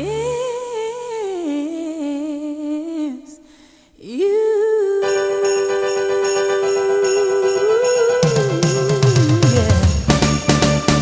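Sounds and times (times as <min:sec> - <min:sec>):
low backing tone: 0:00.0 - 0:01.0.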